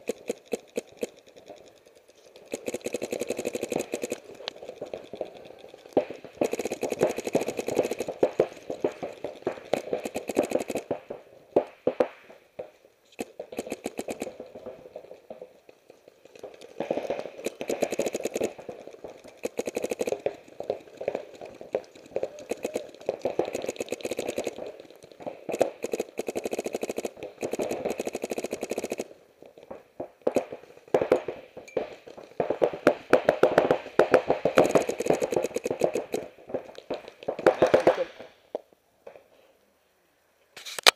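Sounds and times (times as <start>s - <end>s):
paintball markers firing: 0.0s - 12.4s, 13.1s - 38.4s.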